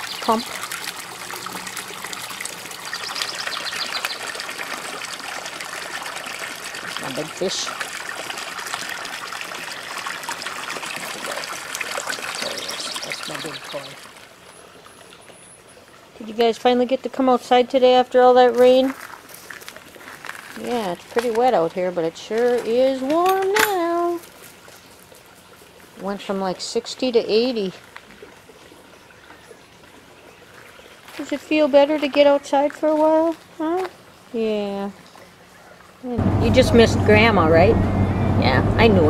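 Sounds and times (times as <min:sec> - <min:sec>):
water trickling into pond: 0:00.0 - 0:38.4
woman's voice: 0:00.2 - 0:00.5, 0:07.0 - 0:07.7, 0:12.4 - 0:14.0, 0:16.2 - 0:19.0, 0:20.6 - 0:24.2, 0:26.0 - 0:27.8, 0:31.2 - 0:35.0, 0:36.0 - 0:37.8, 0:38.4 - 0:39.0.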